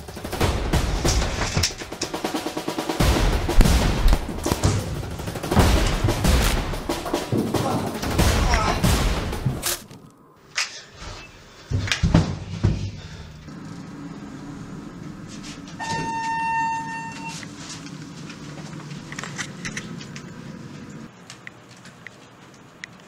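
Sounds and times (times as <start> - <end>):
steady low hum: 0.0 - 10.4, 11.4 - 21.2
thuds and bangs of scuffle: 11.7 - 13.0
electronic elevator chime: 15.8 - 17.5.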